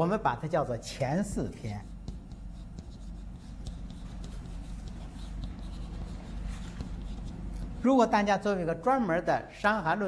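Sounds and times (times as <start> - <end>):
low steady hum: 0.0 - 10.0
chalk scratching on blackboard: 1.4 - 8.3.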